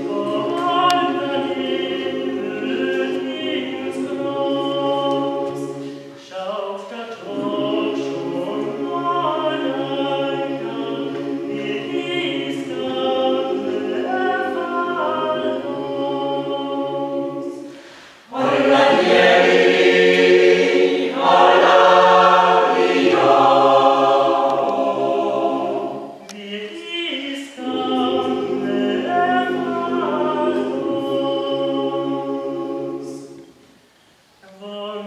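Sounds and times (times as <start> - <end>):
mixed choir singing a cappella: 0.0 - 33.6.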